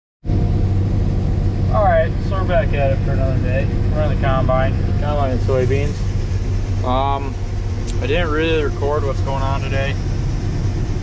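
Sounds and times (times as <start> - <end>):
combine harvester droning: 0.2 - 11.0
man's voice: 6.8 - 10.0.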